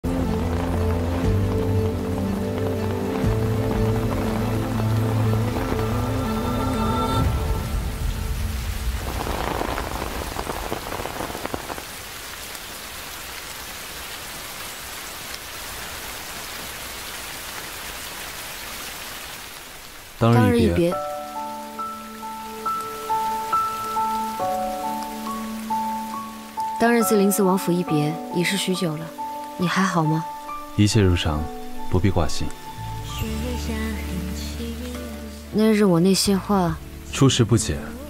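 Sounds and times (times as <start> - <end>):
soft background music: 0.0 - 9.2, 20.2 - 38.0
rain falling: 0.0 - 38.0.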